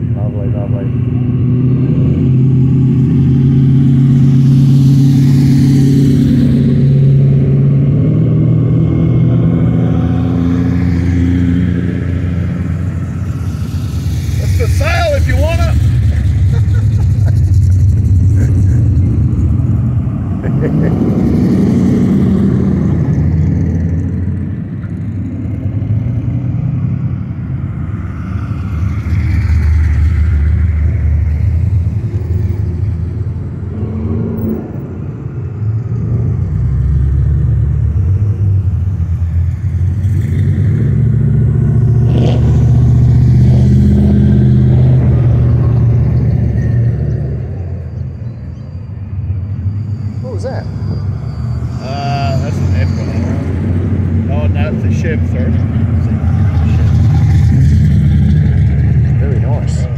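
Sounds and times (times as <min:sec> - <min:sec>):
car engines idling and revving: 0:00.0 - 0:59.9.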